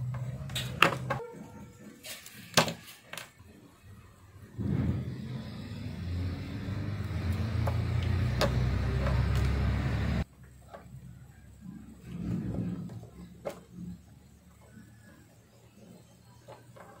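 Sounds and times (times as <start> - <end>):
low-pitched motor drone: 4.2 - 10.2.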